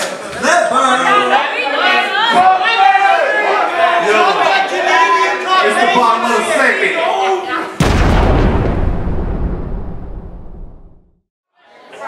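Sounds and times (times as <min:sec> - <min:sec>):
deep boom rumbling: 0:07.8 - 0:11.1.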